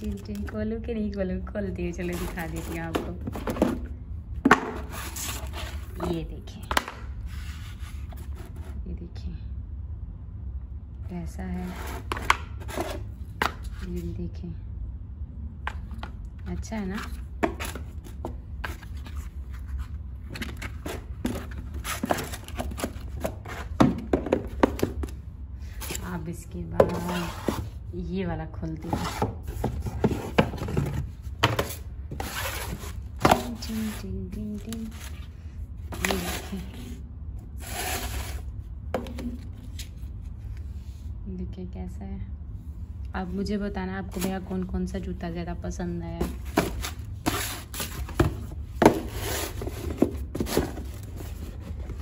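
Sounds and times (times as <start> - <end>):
tissue paper and cardboard rustling: 2.0 - 3.8, 46.2 - 52.0
rustling of cardboard box: 2.0 - 3.9, 17.0 - 25.1, 28.9 - 37.0, 37.6 - 38.5, 46.2 - 52.0.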